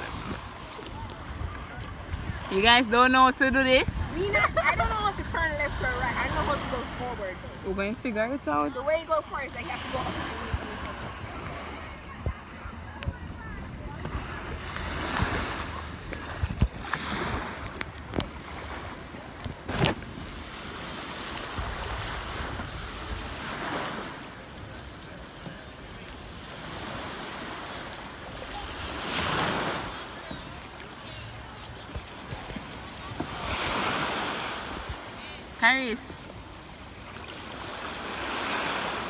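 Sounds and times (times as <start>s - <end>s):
wind on microphone: 0.0s - 23.8s
small waves lapping on shore: 0.0s - 39.0s.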